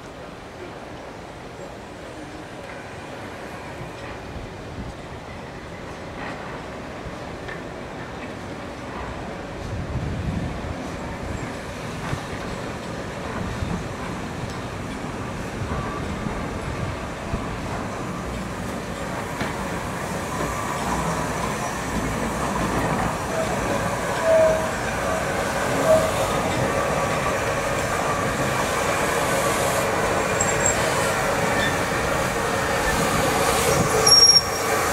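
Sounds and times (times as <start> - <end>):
steam locomotive rumbling past: 1.7 - 34.9
wheel squeals: 23.2 - 26.6, 30.3 - 32.0, 33.7 - 34.9.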